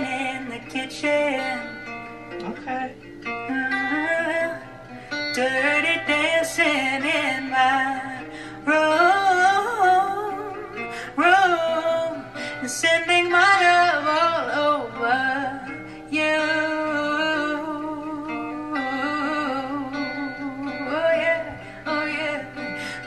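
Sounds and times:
guitar accompaniment: 0.0s - 23.0s
woman singing a soul ballad: 0.0s - 23.0s.

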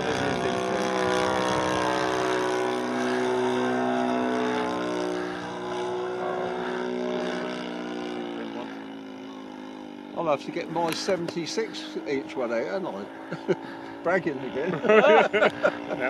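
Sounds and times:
model plane engine droning: 0.0s - 16.0s.

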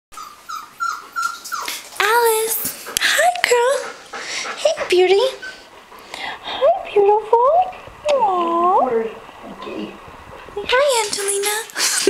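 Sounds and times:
dog whining: 0.1s - 2.4s, 5.3s - 5.7s.

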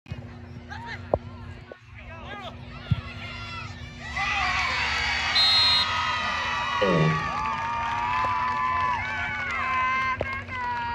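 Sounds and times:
crowd cheering and yelling: 2.8s - 10.9s.

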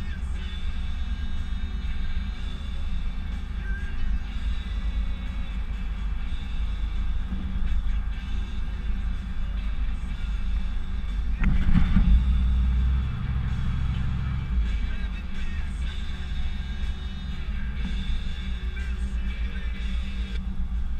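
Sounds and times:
pickup engine drone inside cab: 0.0s - 20.9s
road noise: 0.0s - 20.9s.

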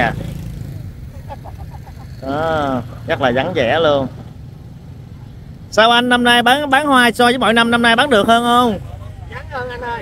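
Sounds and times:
motorbikes passing: 0.0s - 10.0s
street traffic rumble: 0.0s - 10.0s.

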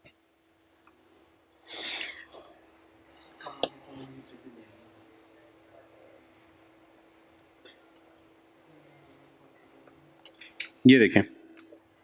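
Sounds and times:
person breathy exhale: 1.7s - 2.5s.

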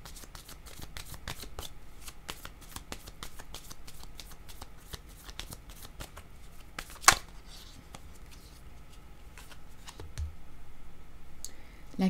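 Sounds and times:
cards being shuffled: 0.0s - 10.3s.

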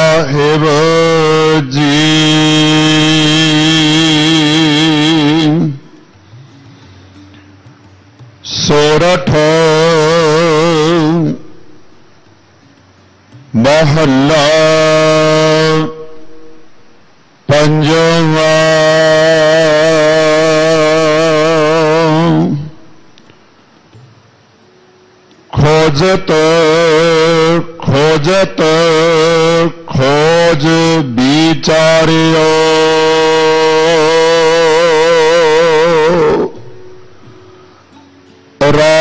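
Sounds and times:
person chanting long sung note: 0.0s - 6.1s, 8.4s - 11.9s, 13.6s - 16.8s, 17.5s - 23.0s, 25.5s - 39.0s
faint hiss: 0.0s - 39.0s.

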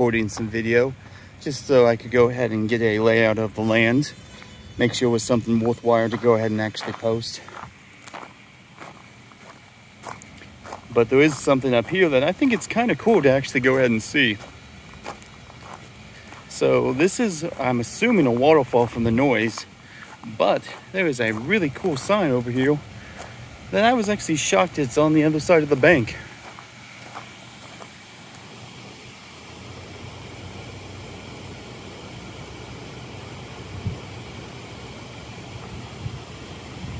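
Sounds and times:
footsteps on gravel: 0.1s - 28.5s.

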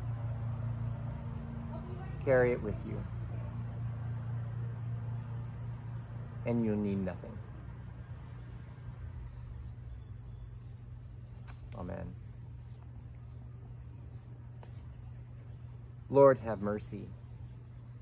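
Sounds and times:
low hum: 0.0s - 16.0s
insects chirping: 0.0s - 18.0s.

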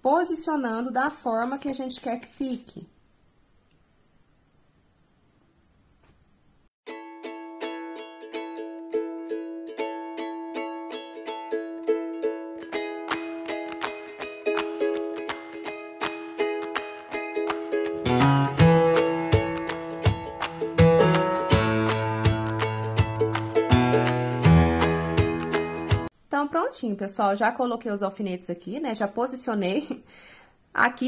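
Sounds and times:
plucked-string melody: 6.9s - 26.1s.

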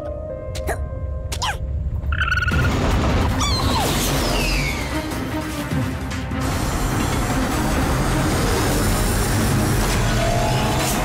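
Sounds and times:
background music: 0.0s - 11.0s
train speeding on rails: 4.8s - 11.0s.

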